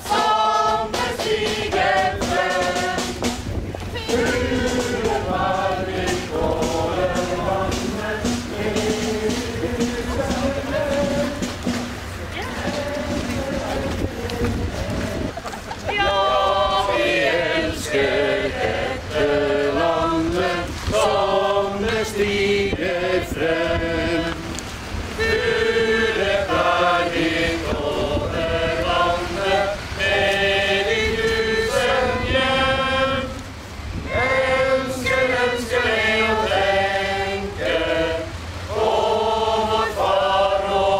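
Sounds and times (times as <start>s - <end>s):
group of people singing: 0.0s - 40.9s
low outdoor rumble: 0.0s - 40.9s.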